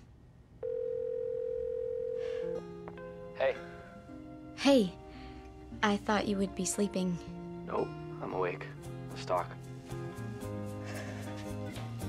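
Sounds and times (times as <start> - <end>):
telephone ringback tone: 0.6 - 2.6
soft background music: 2.3 - 12.0.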